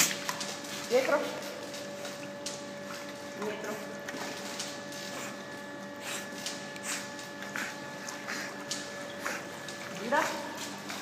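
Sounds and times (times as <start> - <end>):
water sloshing and splashing: 0.0 - 5.6, 6.2 - 11.0
mechanical hum with whine: 0.0 - 11.0.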